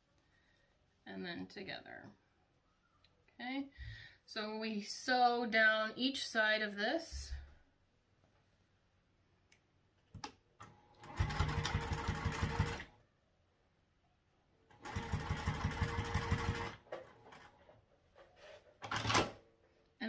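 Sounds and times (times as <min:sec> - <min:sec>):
sewing machine stitching: 0:11.0 - 0:12.9, 0:14.7 - 0:17.5.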